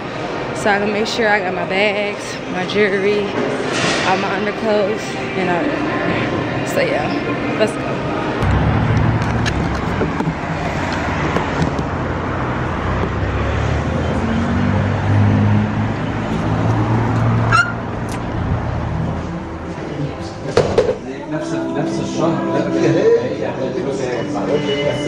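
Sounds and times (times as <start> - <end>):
vehicle engine running: 8.4 - 14.8
short rising squeak: 17.5 - 17.8.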